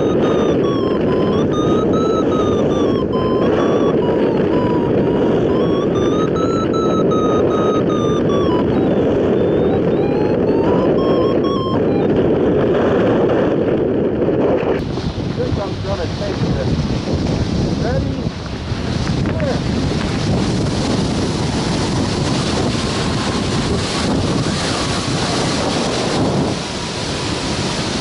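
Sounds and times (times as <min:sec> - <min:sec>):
held tone rising and falling: 0:00.0 - 0:12.7
wind rushing over microphone: 0:00.0 - 0:28.0.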